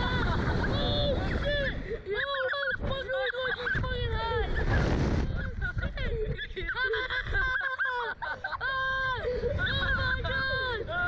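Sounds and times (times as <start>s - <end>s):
wind on microphone: 0.0s - 7.5s, 8.7s - 11.0s
boys laughing and shrieking: 0.0s - 11.0s.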